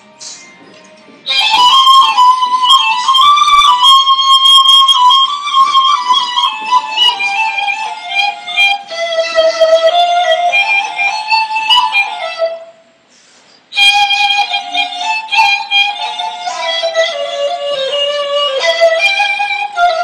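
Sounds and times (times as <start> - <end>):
reed flute playing slow melody: 1.2 - 13.0, 13.7 - 20.0.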